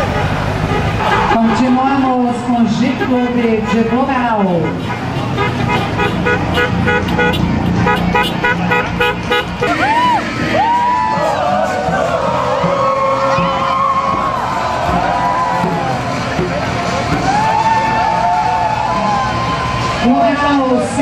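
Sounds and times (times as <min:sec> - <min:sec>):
crowd calling and chanting: 0:00.0 - 0:21.0
vehicle horn short beeps: 0:04.6 - 0:09.9.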